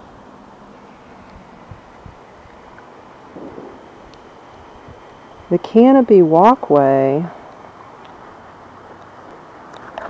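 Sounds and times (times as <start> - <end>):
steady low hiss: 0.0 - 10.0
wind buffeting microphone: 1.3 - 5.8.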